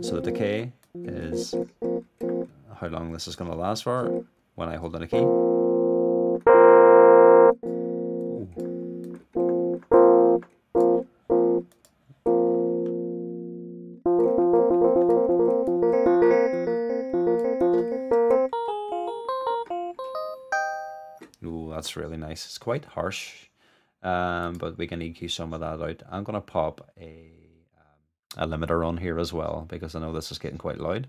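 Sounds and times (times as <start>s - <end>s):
electric piano chords and runs: 1.0s - 2.5s, 5.2s - 11.7s, 12.3s - 21.2s.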